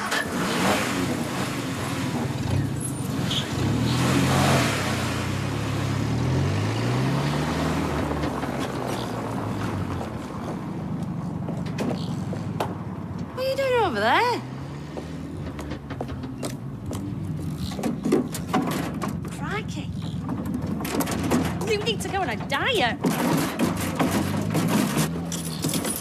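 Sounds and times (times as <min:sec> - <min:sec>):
car engine revving and accelerating: 0:00.0 - 0:10.4.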